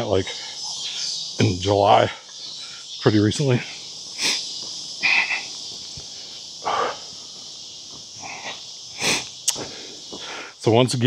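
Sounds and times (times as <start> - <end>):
high-pitched insect chorus: 0.0 - 11.0.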